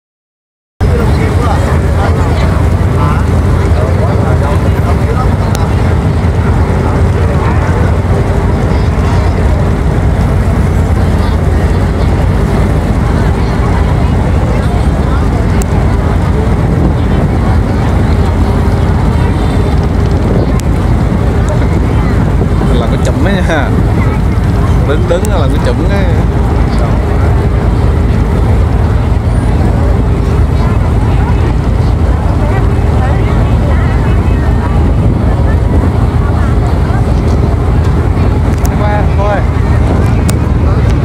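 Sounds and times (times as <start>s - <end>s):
boat engine droning: 0.8s - 41.0s
people talking: 0.8s - 41.0s.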